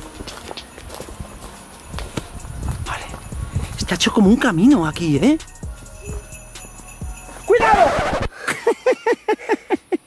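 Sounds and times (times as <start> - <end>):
footsteps on stony dirt path: 0.0 - 5.2.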